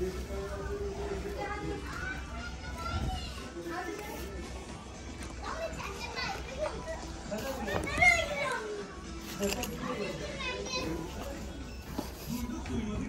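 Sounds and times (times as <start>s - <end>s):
children talking and calling out: 0.3s - 12.9s.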